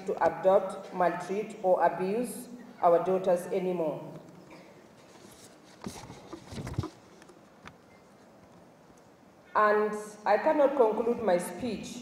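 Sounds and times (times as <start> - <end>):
paper rustling: 5.0 - 7.4.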